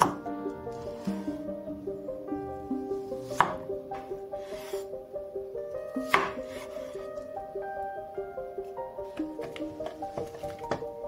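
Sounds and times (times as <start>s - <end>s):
plucked melody music: 0.0s - 11.0s.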